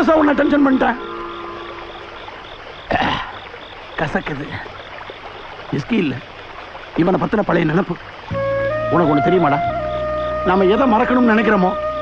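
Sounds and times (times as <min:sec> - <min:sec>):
insect chirping: 0:00.0 - 0:12.0
stream: 0:00.0 - 0:12.0.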